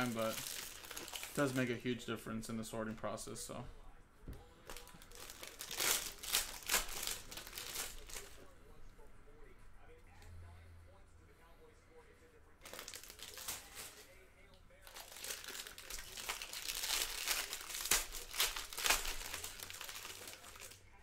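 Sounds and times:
foil wrapper crinkling: 0.0s - 1.8s, 4.6s - 8.5s, 12.6s - 14.2s, 14.8s - 20.8s.

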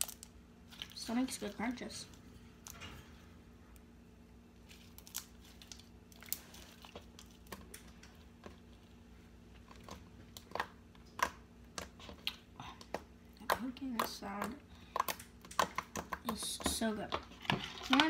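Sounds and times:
slime crackling and popping: 4.6s - 8.0s, 9.7s - 16.4s.

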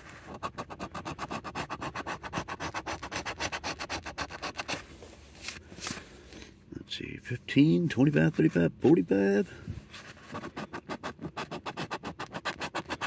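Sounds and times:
coin scraping a scratch card: 10.3s - 13.0s.

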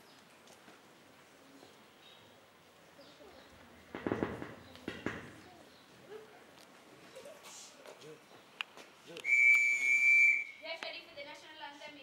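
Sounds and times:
whistle long high blast: 9.2s - 10.6s.

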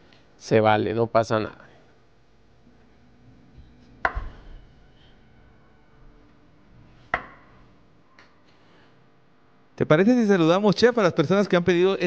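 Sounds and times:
knife knocking on wooden board: 4.0s - 4.4s.

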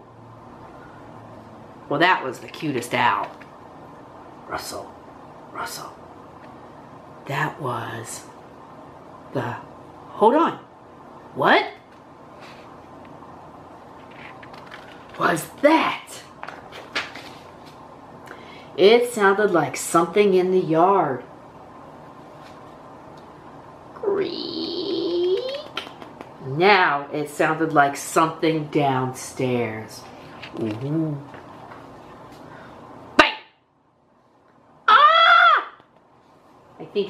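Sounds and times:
book page turning: 14.0s - 15.2s, 16.4s - 17.8s
person calling out: 24.0s - 25.8s, 34.9s - 35.8s.

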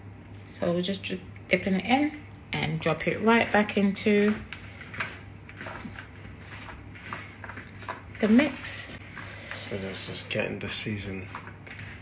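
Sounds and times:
soft rustling and patting in flour: 3.0s - 12.0s.

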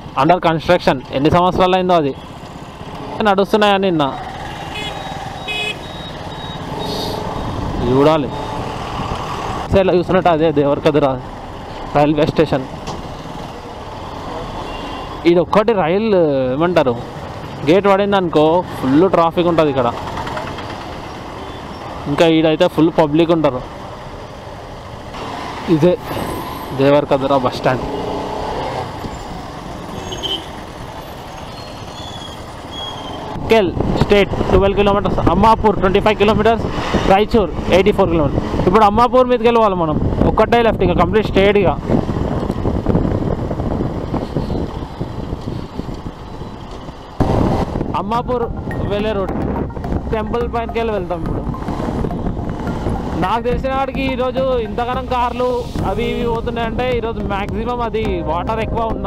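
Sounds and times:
traffic engines running: 0.0s - 59.0s
short horn beeps: 4.7s - 7.3s
wind noise on microphone: 33.2s - 39.1s, 39.7s - 54.6s.

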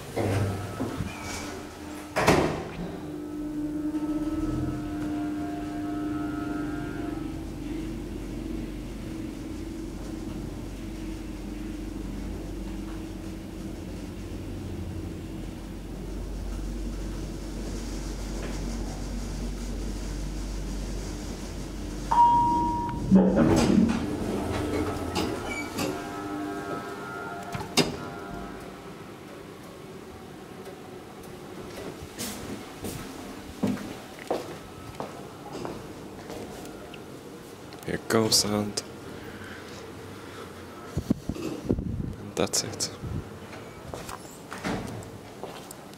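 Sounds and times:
elevator car rumble: 0.0s - 42.3s
elevator drive hum: 0.0s - 45.9s
elevator chime tone: 22.1s - 23.4s, 24.1s - 28.6s
elevator clunk: 22.1s - 26.8s.

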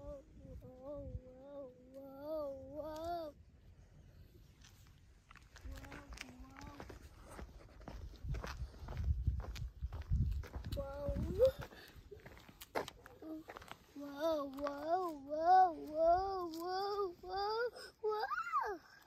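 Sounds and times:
wind rumble on microphone: 0.0s - 1.6s, 5.6s - 12.2s
small child's voice: 0.0s - 3.4s, 5.6s - 7.0s, 10.4s - 11.8s, 13.0s - 19.0s
footsteps on paved path: 4.5s - 17.0s.

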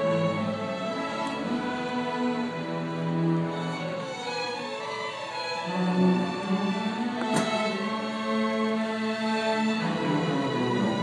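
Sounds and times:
string orchestra playing: 0.0s - 11.0s.

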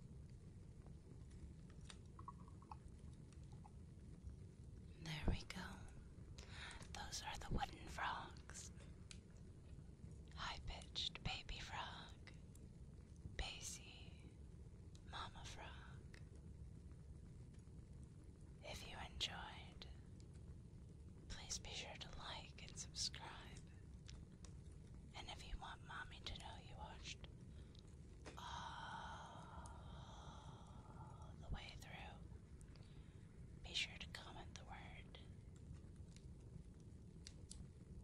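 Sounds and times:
mouth clicks: 2.2s - 2.8s
person whispering: 5.0s - 5.9s, 6.5s - 8.7s, 10.4s - 12.2s, 13.4s - 14.2s, 15.1s - 16.0s, 18.6s - 19.9s, 21.3s - 23.6s, 25.2s - 27.2s, 28.4s - 32.2s, 33.6s - 35.2s.

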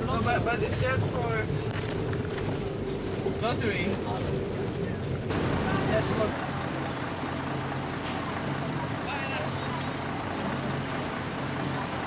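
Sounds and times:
street noise: 0.0s - 12.0s
vehicle engine drone: 0.0s - 12.0s.

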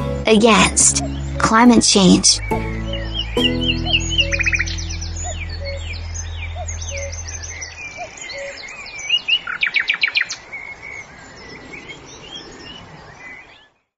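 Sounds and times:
small birds chirping: 0.4s - 13.9s
fast bird trill: 0.5s - 10.4s
low held tone: 2.4s - 8.5s.

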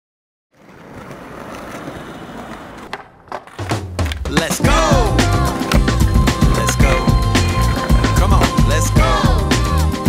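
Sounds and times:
skateboard wheels rolling on pavement: 0.5s - 4.6s, 5.2s - 9.0s
skateboard knocks: 0.6s - 4.5s.

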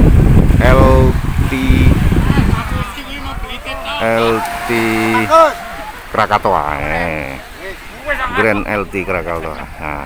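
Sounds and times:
wind buffeting microphone: 0.0s - 7.6s
person calling out: 4.1s - 5.9s.

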